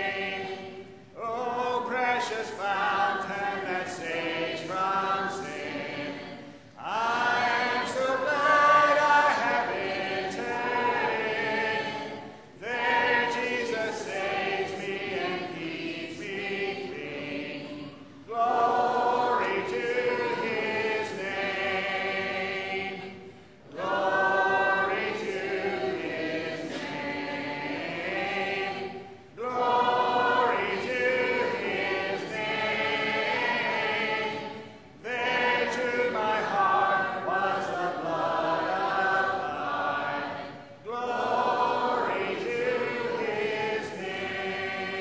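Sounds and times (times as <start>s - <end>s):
congregation singing a hymn: 0.0s - 45.0s.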